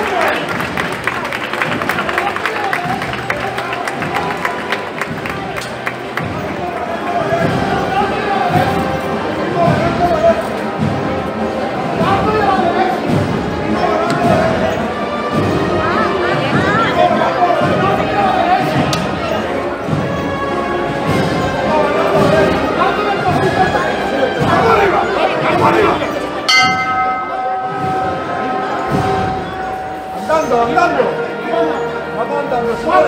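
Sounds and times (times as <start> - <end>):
crowd voices: 0.0 - 33.0
small hand bell ringing: 26.5 - 28.4.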